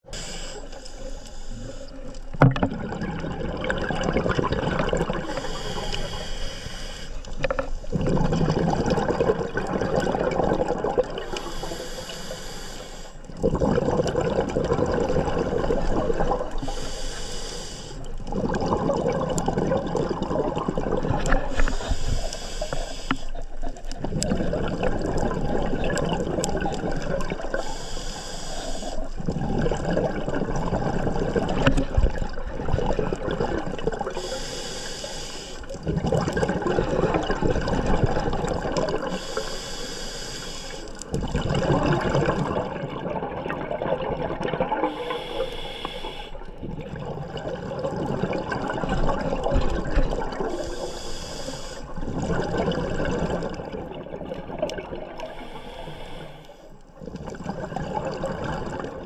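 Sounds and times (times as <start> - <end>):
regulator hissing inhales: 0.1 - 2.0, 5.2 - 8.0, 11.2 - 13.3, 16.6 - 18.1, 21.5 - 23.5, 27.5 - 29.2, 34.2 - 35.8, 39.1 - 41.1, 44.8 - 46.5, 50.5 - 52.0, 55.2 - 56.8
exhaled bubbles rushing: 2.2 - 5.8, 7.3 - 11.5, 13.3 - 16.8, 18.0 - 22.0, 23.4 - 27.6, 29.0 - 34.3, 35.7 - 39.3, 41.0 - 45.1, 46.4 - 50.8, 51.9 - 55.5, 57.0 - 59.0.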